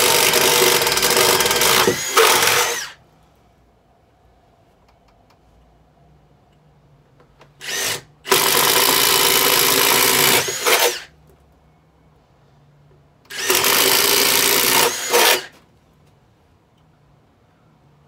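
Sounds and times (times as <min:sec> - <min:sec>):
cordless drill boring: 0:00.0 - 0:03.0, 0:07.6 - 0:11.1, 0:13.3 - 0:15.5.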